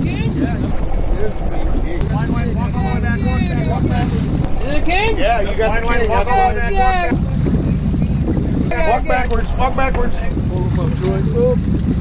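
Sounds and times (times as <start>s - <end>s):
boat engine rumble: 0.0s - 12.0s.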